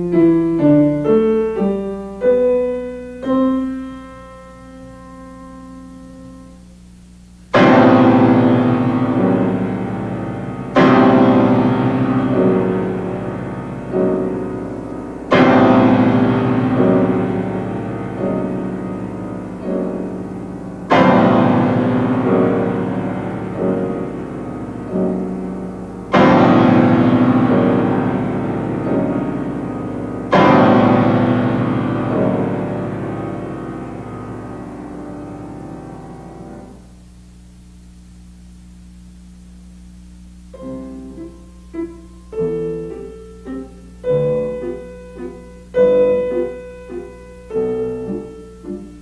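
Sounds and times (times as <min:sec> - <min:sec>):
grand piano chords: 0:00.0 - 0:37.1, 0:40.1 - 0:49.0.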